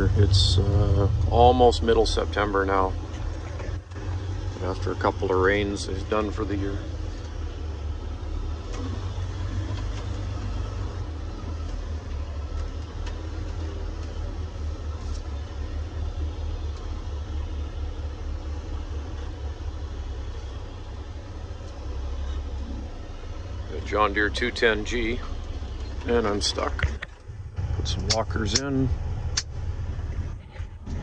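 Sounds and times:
diesel truck engine rumbling: 0.0 - 31.0.

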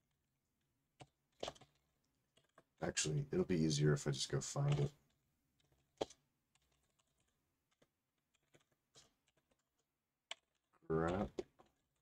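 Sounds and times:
computer keyboard typing: 1.0 - 2.7, 4.6 - 12.0.

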